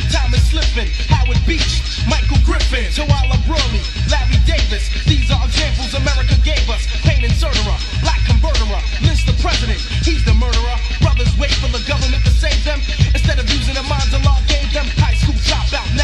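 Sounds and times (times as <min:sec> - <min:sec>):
rapping over a beat: 0:00.0 - 0:16.0.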